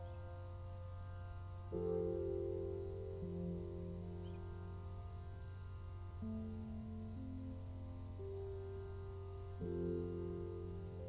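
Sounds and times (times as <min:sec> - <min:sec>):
ambient meditation music: 0:00.0 - 0:11.0
low steady drone: 0:00.0 - 0:11.0.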